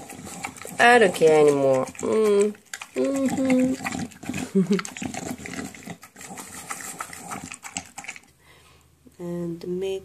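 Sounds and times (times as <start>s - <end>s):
dog chewing wet food: 0.0s - 8.4s.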